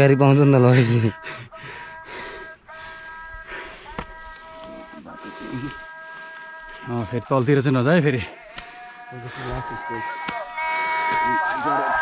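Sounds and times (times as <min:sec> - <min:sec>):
insects buzzing: 0:00.2 - 0:12.0.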